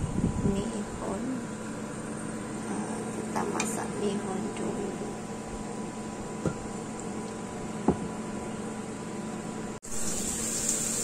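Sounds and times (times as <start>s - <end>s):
machine humming: 0.0s - 11.0s.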